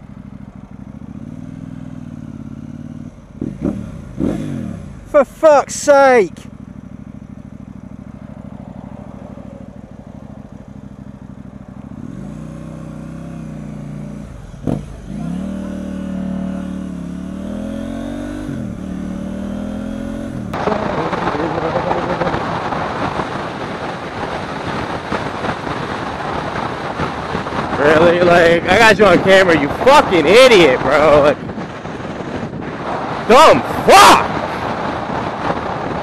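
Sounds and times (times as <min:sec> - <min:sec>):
motorcycle engine: 0:00.0 - 0:36.0
wind and road noise: 0:00.0 - 0:36.0.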